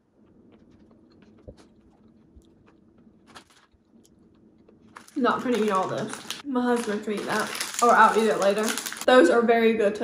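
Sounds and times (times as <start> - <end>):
chewing cake: 0.0 - 5.2.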